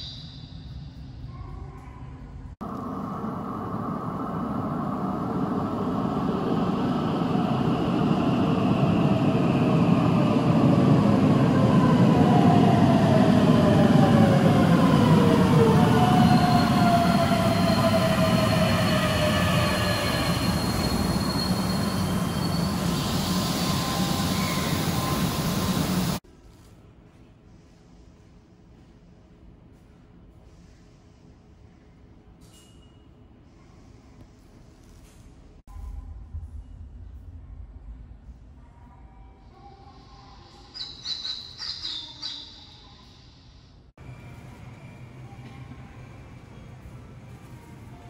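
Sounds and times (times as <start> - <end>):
electric train rumble: 2.4 - 26.2, 44.0 - 48.0
high brake squeal: 16.2 - 26.0.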